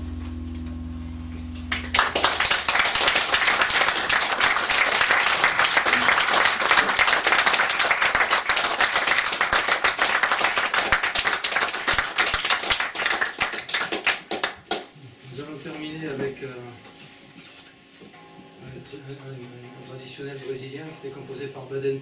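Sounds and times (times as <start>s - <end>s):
audience applauding: 1.7s - 14.9s.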